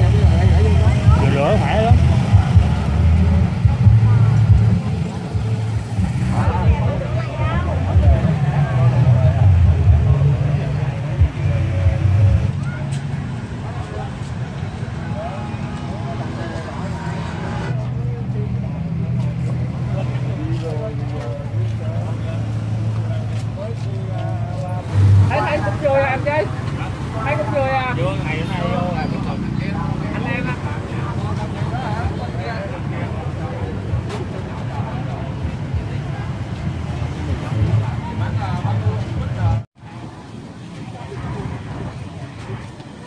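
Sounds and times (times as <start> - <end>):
motorbike engines passing: 0.0 - 43.0
people chattering: 0.0 - 43.0.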